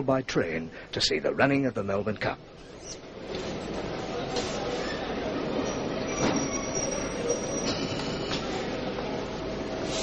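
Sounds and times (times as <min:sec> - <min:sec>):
high wheel squeal: 0:05.7 - 0:08.4.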